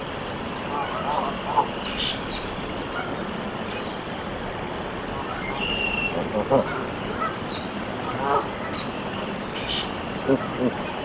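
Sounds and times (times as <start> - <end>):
faint birdsong: 0.0 - 11.0
steady outdoor hiss: 0.0 - 11.0
goose soft calls: 0.7 - 3.1, 5.2 - 7.4, 8.0 - 8.8, 9.6 - 11.0.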